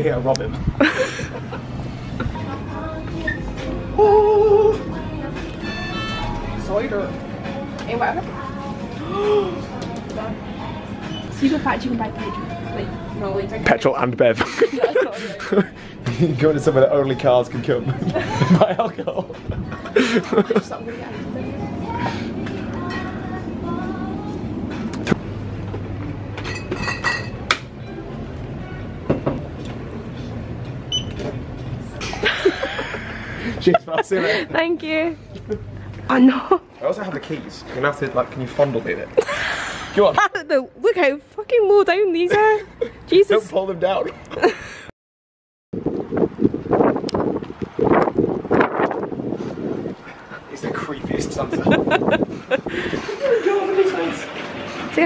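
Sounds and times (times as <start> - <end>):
low hum: 1.4 - 11.5
wind buffeting microphone: 45.8 - 53.4.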